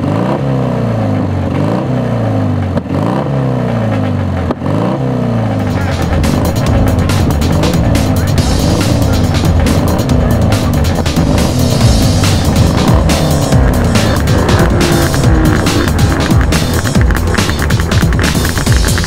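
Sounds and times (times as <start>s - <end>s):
racing engine revving: 0.0s - 19.0s
electronic music: 5.5s - 19.0s.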